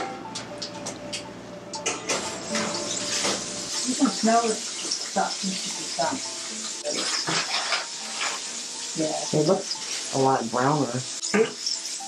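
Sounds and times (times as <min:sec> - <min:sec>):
oil sizzling in a frying pan: 0:01.8 - 0:12.0
aluminium foil crinkling: 0:02.7 - 0:08.6.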